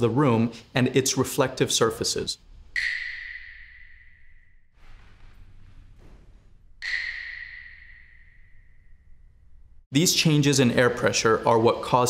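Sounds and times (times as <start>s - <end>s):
high bell-like ping: 2.8s - 4.7s, 6.8s - 9.6s.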